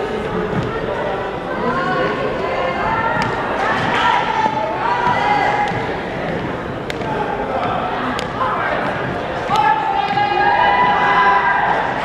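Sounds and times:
echoing indistinct voices: 0.0 - 12.0.

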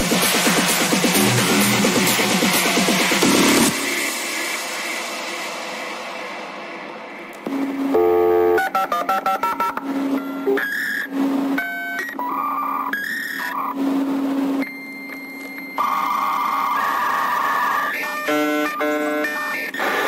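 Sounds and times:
synth beeps and bleeps: 7.5 - 11.1.

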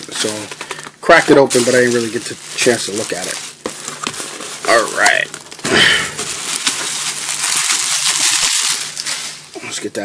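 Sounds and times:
bubble wrap crinkling: 0.0 - 9.6.

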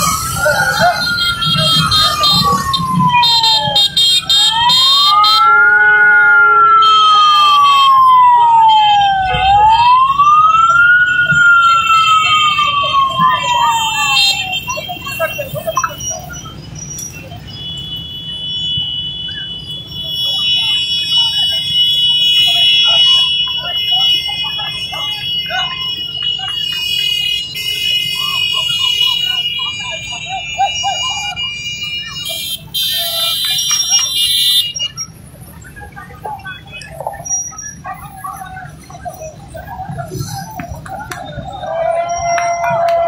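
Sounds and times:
faint voices chattering: 0.0 - 43.0
sirens wailing: 0.0 - 43.0.

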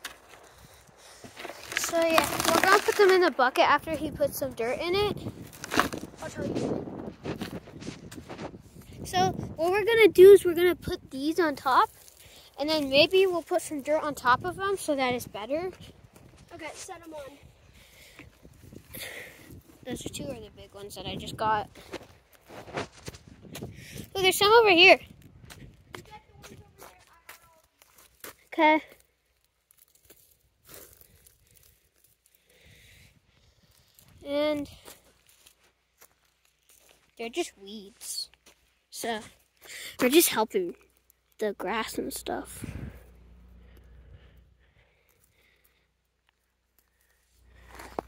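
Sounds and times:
footsteps on dry dirt and leaves: 0.0 - 9.0, 11.6 - 24.2, 25.0 - 48.0.

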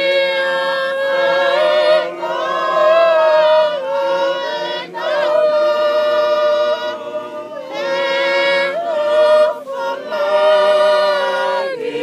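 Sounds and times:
choir singing unaccompanied: 0.0 - 12.0.

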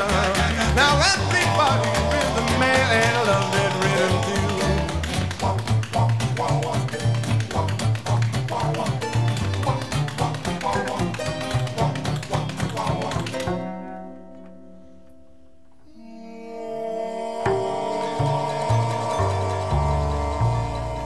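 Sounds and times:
fast tapping beat: 0.0 - 13.5
upright bass: 0.0 - 14.3, 17.2 - 21.0
strummed guitars: 0.0 - 15.9, 17.4 - 21.0.

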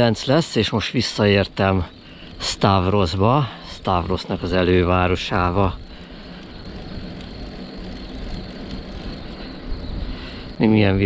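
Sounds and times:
low buffeting rumble: 0.0 - 11.0
wind rushing over microphone: 1.2 - 11.0.

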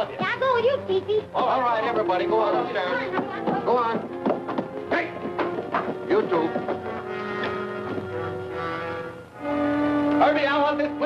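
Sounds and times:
orchestral strings holding long notes: 0.0 - 11.0.

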